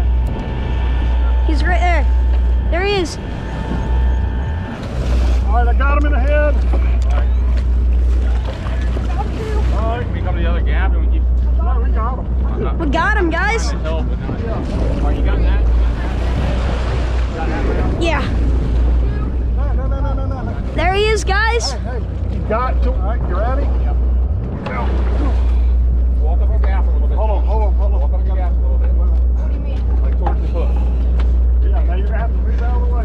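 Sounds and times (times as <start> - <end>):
boat engine rumbling: 0.0 - 33.0
water splashing: 0.0 - 33.0
wind buffeting microphone: 0.0 - 33.0.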